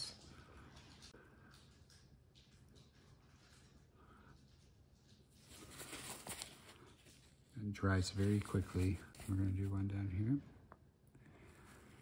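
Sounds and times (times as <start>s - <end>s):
paper towel rustling: 5.4s - 9.9s.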